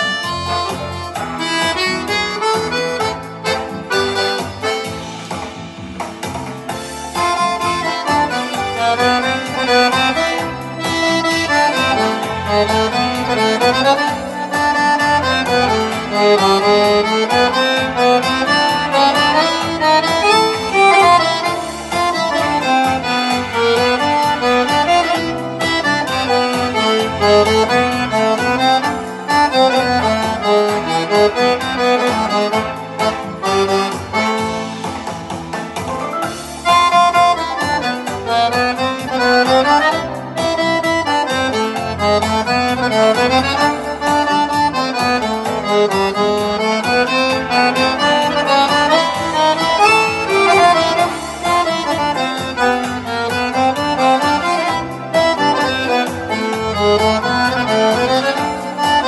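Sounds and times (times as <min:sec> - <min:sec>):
accordion playing cha-cha-cha tune: 0:00.0 - 0:59.0
steady beat: 0:00.0 - 0:59.0.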